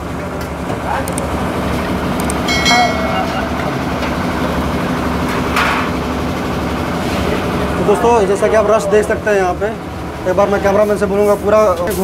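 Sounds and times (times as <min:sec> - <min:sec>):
low hum: 0:01.5 - 0:06.9
metallic ring: 0:02.5 - 0:05.4.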